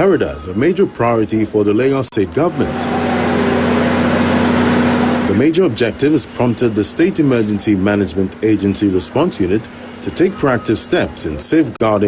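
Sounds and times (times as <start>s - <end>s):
train engine hum: 0.0s - 11.8s.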